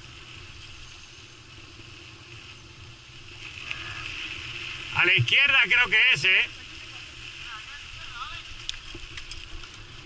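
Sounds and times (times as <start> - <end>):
bike tyres rumbling on dirt: 0.0 - 10.0.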